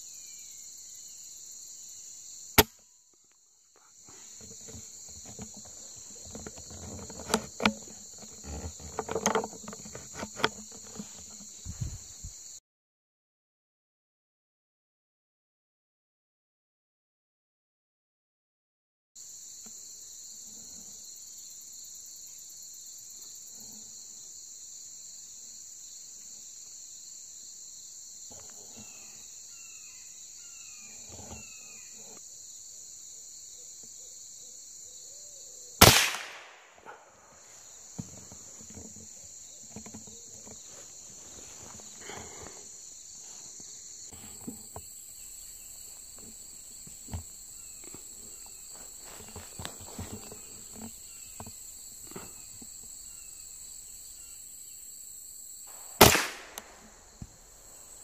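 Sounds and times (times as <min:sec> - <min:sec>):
rifle shot: 0:35.8 - 0:36.8, 0:56.0 - 0:56.8.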